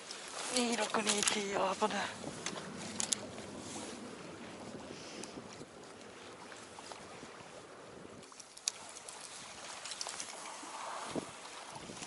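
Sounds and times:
water around a boat: 0.0s - 12.0s
wind: 0.0s - 12.0s.

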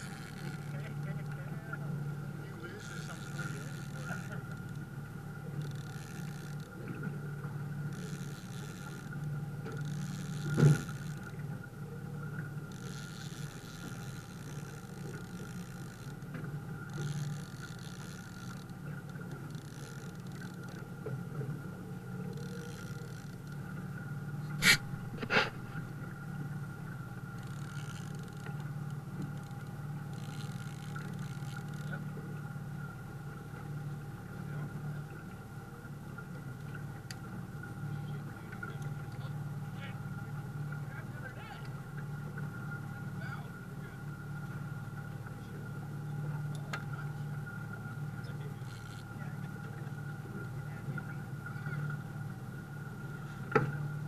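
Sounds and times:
boat motor running: 0.0s - 54.0s
water slapping against hull: 0.0s - 54.0s.

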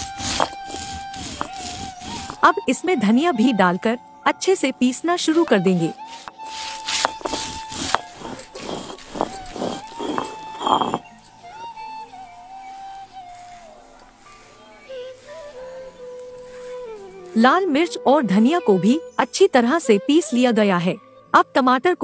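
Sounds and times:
stone roller scraping on stone: 0.0s - 2.6s, 5.1s - 11.2s
background music with held melody: 0.0s - 22.0s.

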